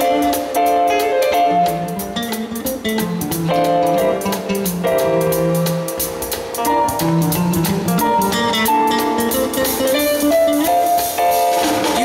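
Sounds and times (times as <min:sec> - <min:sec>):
bass: 0:00.0 - 0:12.0
drum kit cymbals: 0:00.0 - 0:12.0
melodic lead line: 0:00.0 - 0:12.0.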